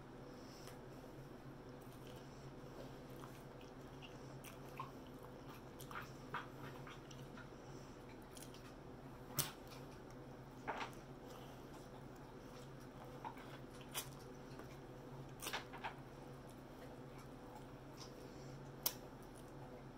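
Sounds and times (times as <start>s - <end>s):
steady low hum: 0.0s - 19.9s
chewing crispy food: 0.7s - 19.9s.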